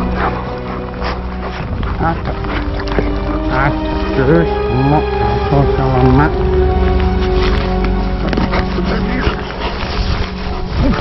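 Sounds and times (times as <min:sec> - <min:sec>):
background music sustained notes: 0:00.0 - 0:11.0.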